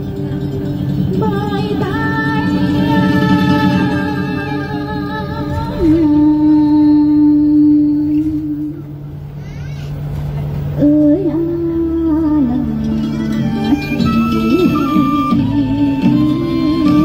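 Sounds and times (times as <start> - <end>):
musical accompaniment: 0.0 - 7.8, 11.4 - 17.0
woman singing slow song: 1.1 - 9.0, 10.8 - 17.0.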